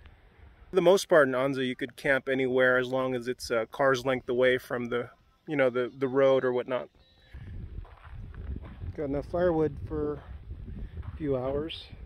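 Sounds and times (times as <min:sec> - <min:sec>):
footsteps on sand: 0:07.3 - 0:11.9
wind rumbling on microphone: 0:07.4 - 0:12.0.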